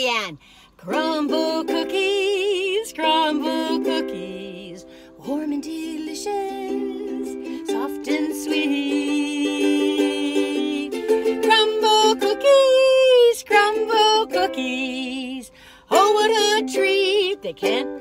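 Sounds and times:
strummed ukulele: 0.8 - 18.0
woman singing: 0.8 - 18.0.

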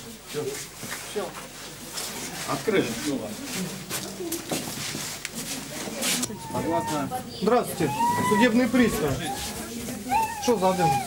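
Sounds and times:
indistinct voices: 5.3 - 11.0.

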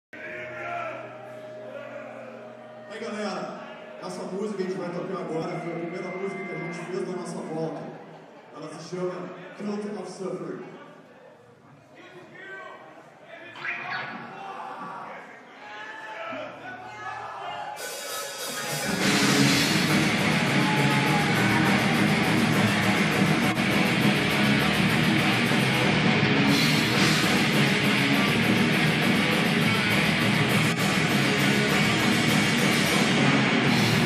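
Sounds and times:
heavy metal band playing live: 17.9 - 34.0.

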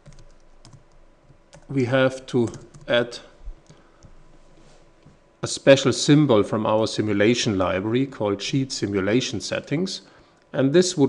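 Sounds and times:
computer keys clicking: 0.0 - 1.7, 2.4 - 3.0
person speaking: 1.6 - 3.8, 5.1 - 11.0.

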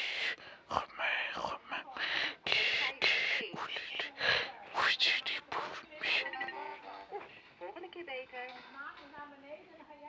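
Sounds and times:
person whispering: 0.0 - 6.5.

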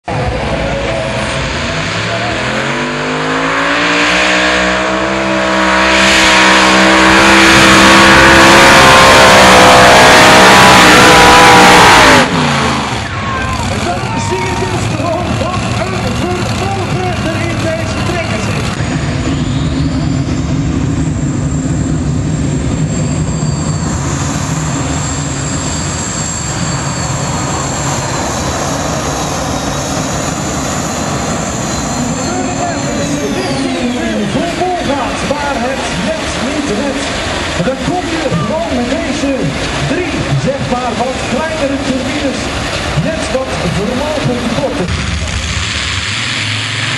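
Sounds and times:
engines idling: 0.0 - 46.9
pulling tractor engines revving: 0.0 - 46.9
steady high whine: 0.0 - 46.9.

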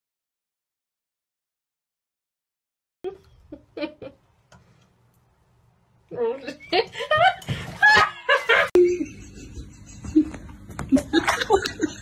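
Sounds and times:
person laughing: 6.7 - 12.0.

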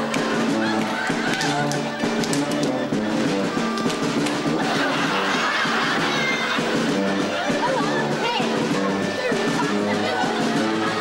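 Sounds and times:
brass band playing folk-dance tune: 0.0 - 11.0
hand slaps on thighs: 0.8 - 2.8.

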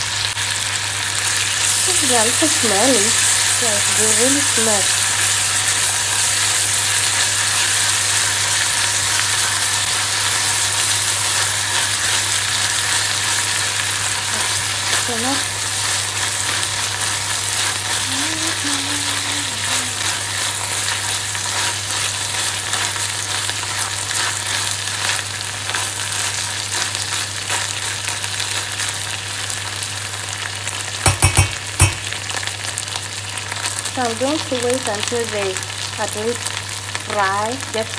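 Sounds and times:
fish and onions sizzling in pan: 0.0 - 37.9
sharp knocks: 31.1 - 32.0.

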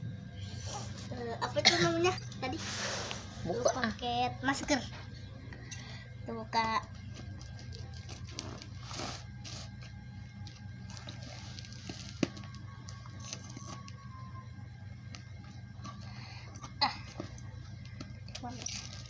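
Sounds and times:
scissors cutting plastic wrapping: 18.3 - 19.0.

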